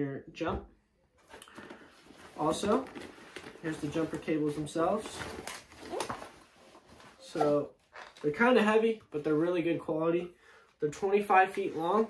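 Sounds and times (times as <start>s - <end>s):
nylon bag rustling: 1.5s - 8.4s.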